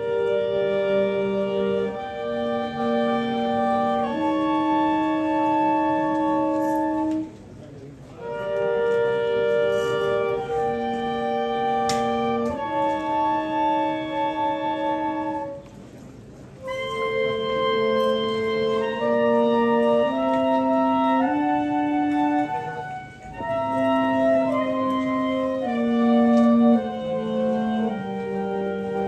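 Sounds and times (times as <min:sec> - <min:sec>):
wind instruments playing chorale: 0:00.0 - 0:07.5, 0:08.1 - 0:29.0.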